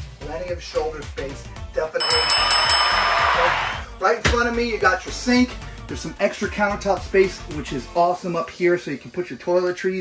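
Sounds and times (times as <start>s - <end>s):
background music: 0.4s - 10.0s
bright chime jingles: 2.0s - 3.8s.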